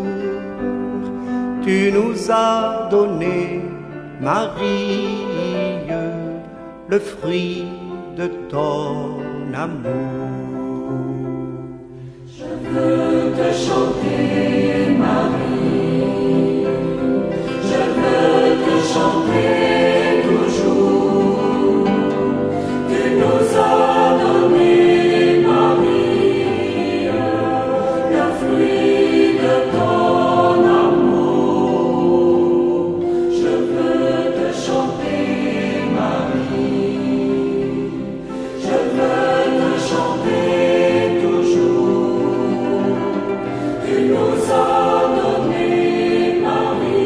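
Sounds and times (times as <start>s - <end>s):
choir singing a hymn: 0.0s - 47.0s.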